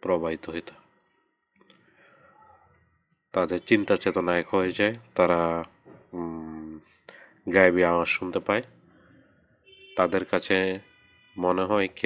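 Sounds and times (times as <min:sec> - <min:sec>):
man narrating: 0:00.0 - 0:00.8, 0:03.4 - 0:06.8, 0:07.5 - 0:08.7, 0:10.0 - 0:10.8, 0:11.4 - 0:12.0.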